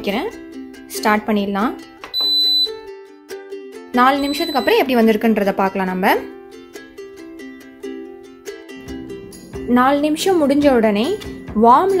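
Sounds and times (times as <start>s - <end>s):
plucked-string background music: 0.0s - 12.0s
pressure cooker beep: 2.1s - 2.8s, 4.1s - 4.9s.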